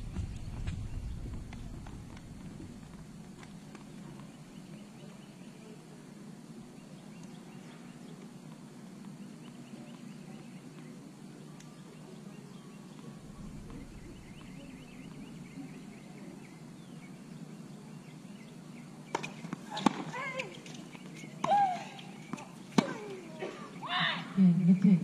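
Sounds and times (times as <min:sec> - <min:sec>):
birds chirping faintly: 0:00.0 - 0:25.0.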